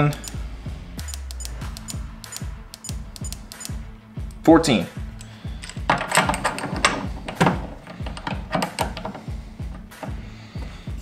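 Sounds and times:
background music with low thumps: 0.0 - 11.0
light sharp clicks: 1.0 - 4.4.

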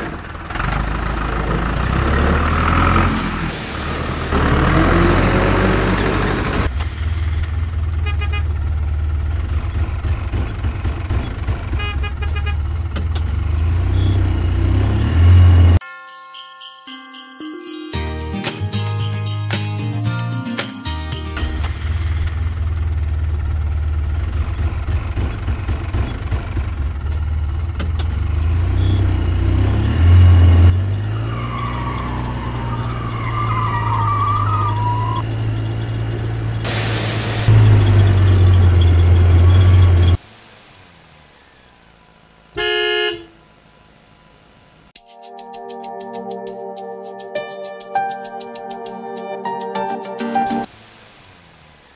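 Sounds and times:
truck engine rumble: 0.0 - 15.8, 18.5 - 45.0
horn toot: 42.6 - 43.4.

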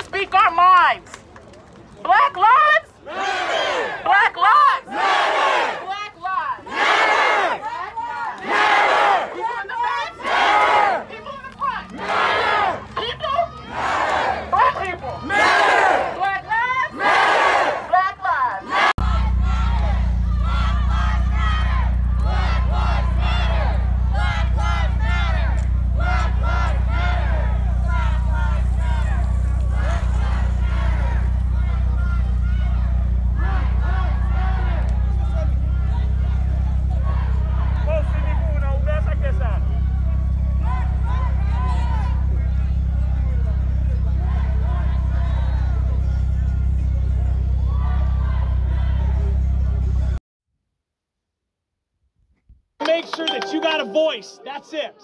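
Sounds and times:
crowd chanting in unison: 3.0 - 4.1, 4.7 - 5.9, 6.6 - 11.1, 11.9 - 12.8, 13.6 - 34.8
car engine hum from inside: 19.0 - 50.2.

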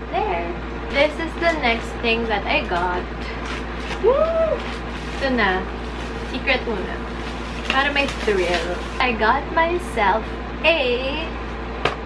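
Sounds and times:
low background hum: 0.0 - 12.0
woman exclaiming woo: 4.0 - 4.6.

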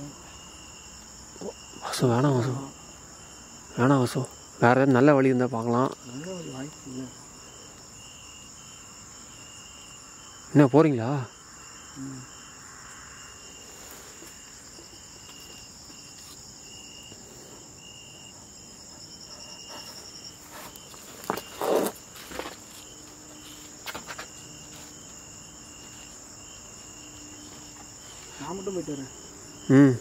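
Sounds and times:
insects chirping: 0.0 - 30.0
knocks and scuffs of climbing: 19.4 - 28.4.

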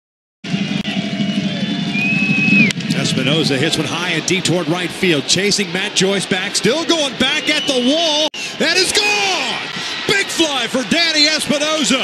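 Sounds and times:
crowd noise: 0.5 - 12.0
long high whistle: 0.9 - 2.8.

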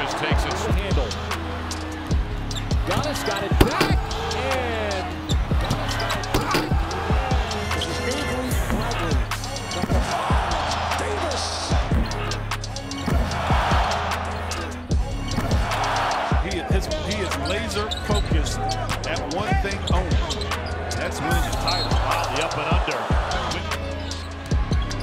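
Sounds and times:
background music with bass: 0.0 - 25.0
crowd cheering: 0.0 - 25.0.

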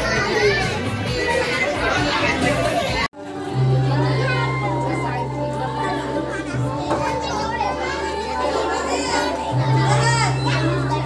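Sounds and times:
children talking and calling: 0.0 - 11.0
music playing: 0.0 - 11.0.

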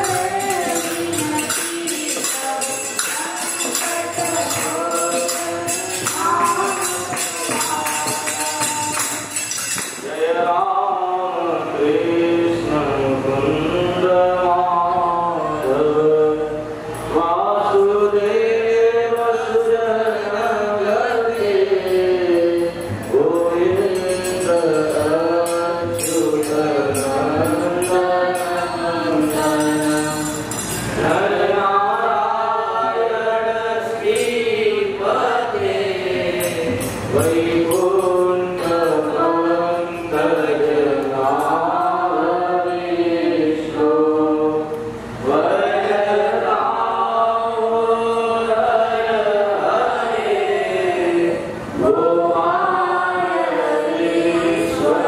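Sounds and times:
male students chanting a hymn: 0.0 - 55.0.

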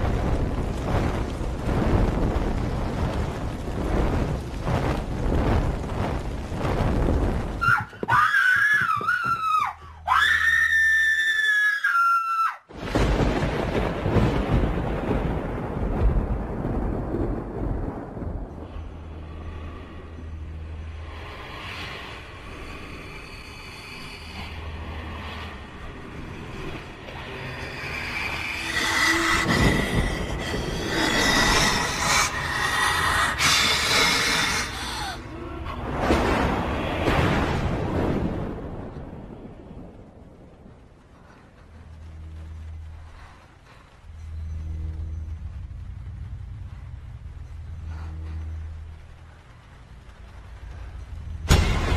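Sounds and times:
noisy rumble: 0.0 - 8.2, 12.7 - 51.9
tense orchestral score: 17.6 - 51.9.

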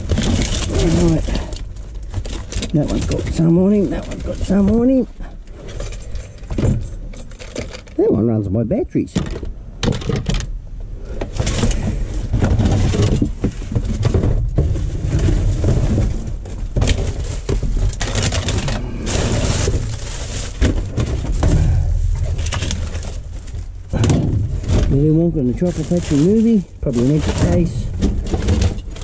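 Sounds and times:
rubbish rustling and clattering: 0.0 - 8.0, 11.1 - 29.0
steady low rumble: 0.0 - 29.0.

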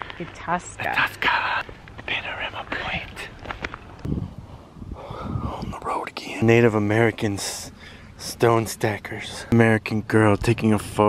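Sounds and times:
person whispering: 0.8 - 3.3, 5.5 - 6.5.

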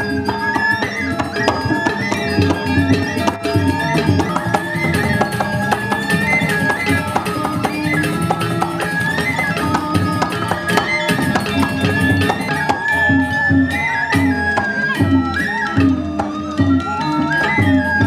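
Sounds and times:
gamelan ensemble playing: 0.0 - 18.0.

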